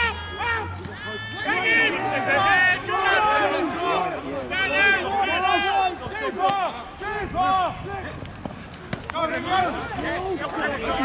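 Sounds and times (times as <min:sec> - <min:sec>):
voices shouting over one another: 0:00.0 - 0:08.3, 0:09.1 - 0:11.0.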